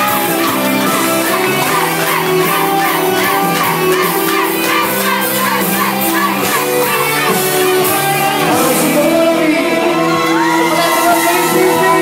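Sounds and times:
crowd cheering and shouting: 0:00.0 - 0:12.0
loud pop music: 0:00.0 - 0:12.0.

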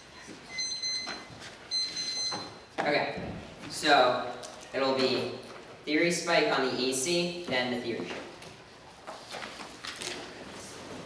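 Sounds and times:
timer alarm beeping: 0:00.5 - 0:02.6.

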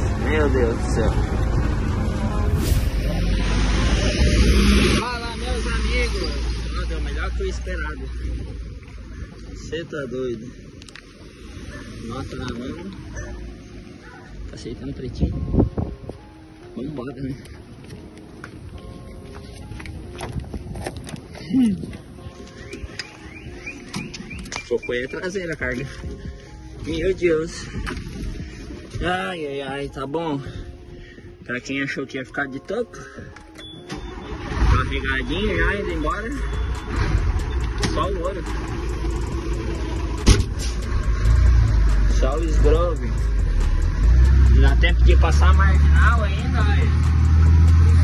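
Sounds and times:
truck engine rumbling: 0:00.0 - 0:16.8, 0:33.2 - 0:48.0
footsteps: 0:17.4 - 0:24.8
low street rumble: 0:33.6 - 0:48.0
sharp knock: 0:40.2 - 0:40.7.

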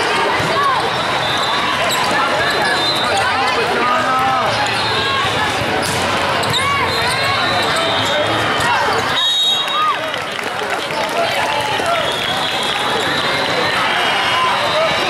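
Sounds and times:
din of voices in a hall: 0:00.0 - 0:09.2
volleyball hits: 0:04.6 - 0:07.7
sneakers squeaking on hardwood: 0:05.8 - 0:08.2.

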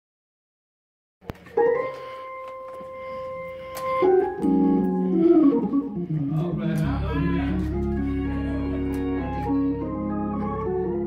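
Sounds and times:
held organ note: 0:01.6 - 0:11.0.

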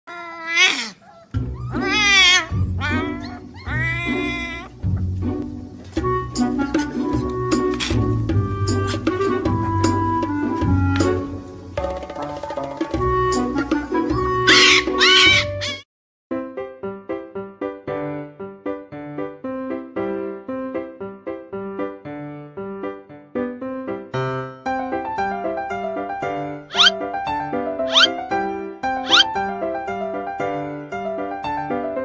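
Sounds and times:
puppy howling: 0:00.1 - 0:04.8, 0:14.5 - 0:15.8, 0:26.7 - 0:27.0, 0:27.9 - 0:28.2, 0:29.0 - 0:29.3
background music: 0:01.3 - 0:15.8, 0:24.2 - 0:32.0.

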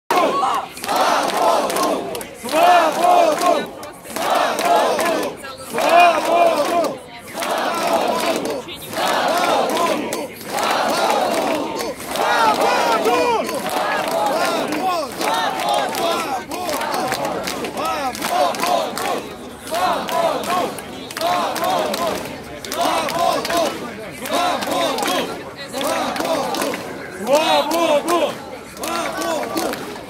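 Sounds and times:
crowd chanting: 0:00.1 - 0:30.0.

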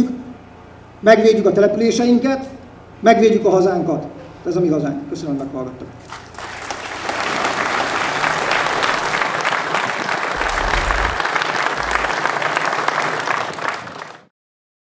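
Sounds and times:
crowd applauding: 0:06.1 - 0:14.3.

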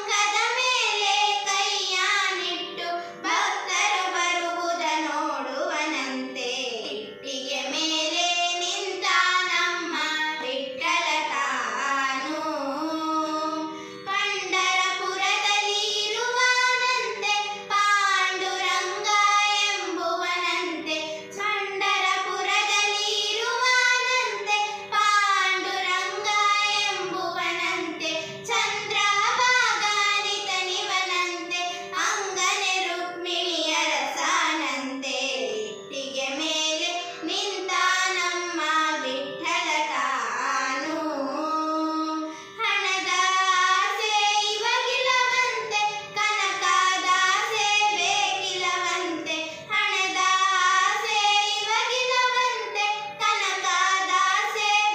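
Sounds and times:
girls singing: 0:00.0 - 0:54.9.

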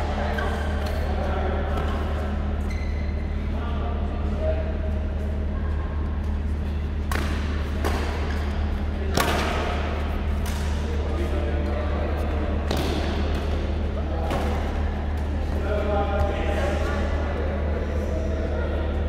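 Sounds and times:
steady low hum: 0:00.0 - 0:19.0
rackets striking shuttlecock: 0:07.0 - 0:10.9, 0:12.6 - 0:13.6.

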